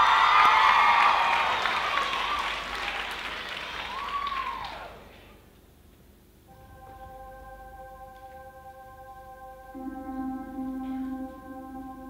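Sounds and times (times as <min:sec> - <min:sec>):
people cheering: 0:00.0 - 0:05.2
audience applauding: 0:00.0 - 0:05.4.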